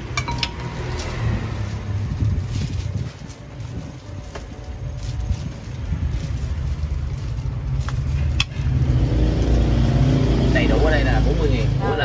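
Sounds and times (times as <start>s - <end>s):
motorbike engine running: 5.0s - 12.0s.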